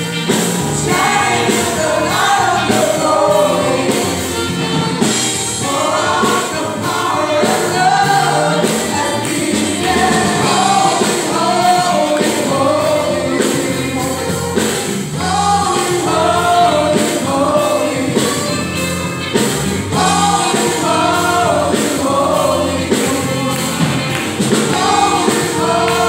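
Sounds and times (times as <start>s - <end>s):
gospel group singing in harmony: 0.0s - 26.0s
keyboard and band accompaniment: 0.0s - 26.0s.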